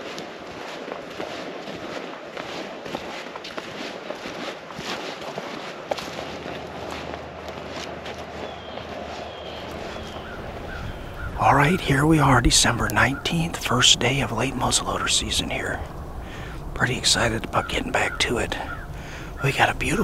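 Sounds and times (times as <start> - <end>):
footsteps crunching on dry stubble: 0.0 - 20.0.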